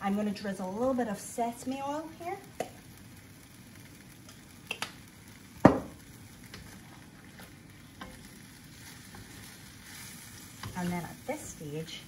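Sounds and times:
food sizzling in a wok: 0.0s - 12.0s.

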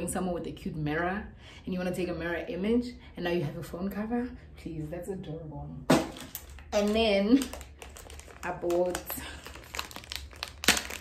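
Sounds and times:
plastic bag crinkling: 6.1s - 11.0s.

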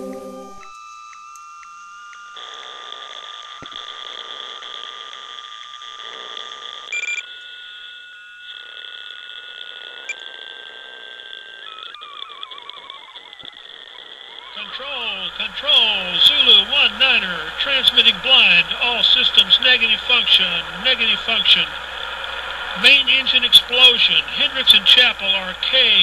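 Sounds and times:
electronic warning tones: 0.0s - 26.0s.

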